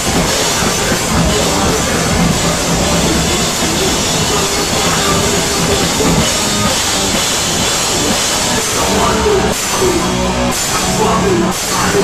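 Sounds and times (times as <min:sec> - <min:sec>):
bass guitar: 0:00.0 - 0:12.0
distorted electric guitar: 0:00.0 - 0:12.0
drum kit: 0:00.0 - 0:12.0.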